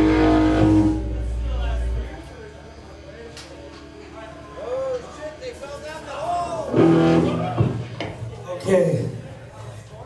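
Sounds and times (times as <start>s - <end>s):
electric guitar chord: 0.0s - 2.3s, 6.7s - 7.5s.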